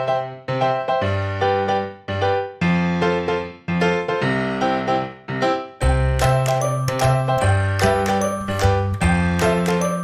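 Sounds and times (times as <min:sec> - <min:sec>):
keyboard tune: 0:00.0 - 0:10.0.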